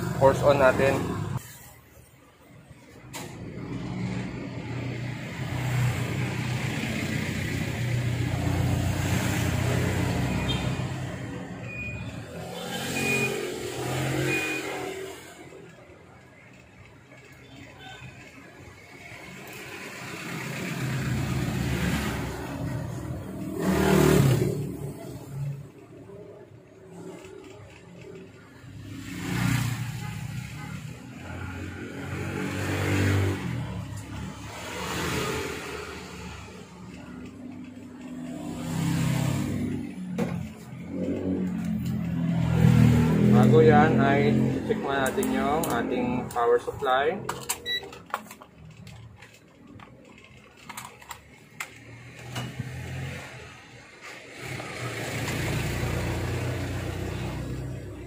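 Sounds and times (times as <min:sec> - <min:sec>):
vehicle engines passing by: 0:00.0 - 0:01.8, 0:02.4 - 0:58.0.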